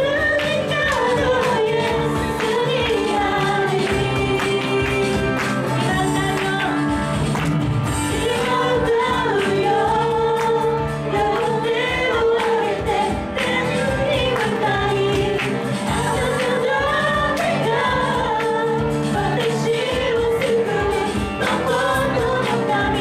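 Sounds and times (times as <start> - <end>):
woman singing into microphone: 0.0 - 7.2, 8.0 - 23.0
electric guitar: 0.0 - 23.0
keyboard: 0.0 - 23.0.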